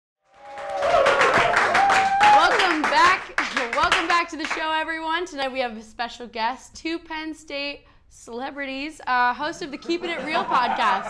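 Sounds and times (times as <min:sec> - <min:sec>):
audience applauding: 0:00.3 - 0:04.2.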